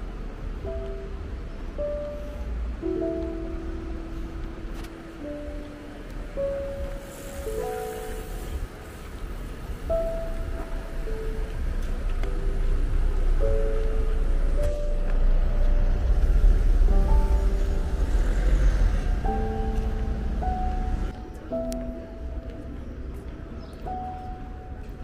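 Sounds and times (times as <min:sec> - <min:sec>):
passing car rumble: 0:00.0 - 0:23.6
slow piano music: 0:00.0 - 0:25.0.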